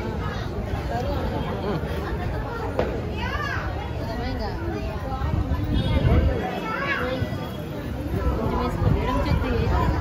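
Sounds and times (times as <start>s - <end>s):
children playing and calling out: 0.0s - 10.0s.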